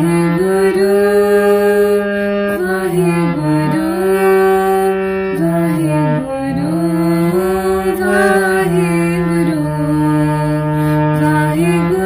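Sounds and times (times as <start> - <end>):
harmonium playing held notes: 0.0 - 12.0
woman singing ornamented phrases: 0.0 - 12.0.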